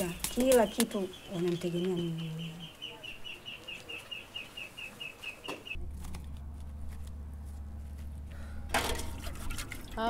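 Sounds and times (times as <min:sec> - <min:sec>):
bird chirping rapidly: 0:00.0 - 0:05.8
low steady hum: 0:05.7 - 0:10.0.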